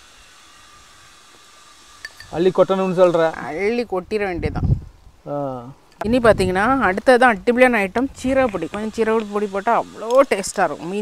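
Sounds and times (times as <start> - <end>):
outdoor background hiss: 0.0 - 11.0.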